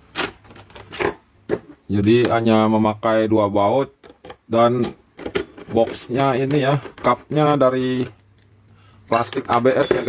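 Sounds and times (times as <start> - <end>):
plastic parts knocking and scraping: 0.1 - 2.4, 4.0 - 8.2, 9.2 - 10.0.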